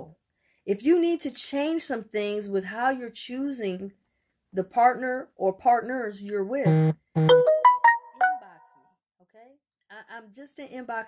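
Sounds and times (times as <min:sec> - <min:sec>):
electronic chime: 0:06.7 - 0:08.5.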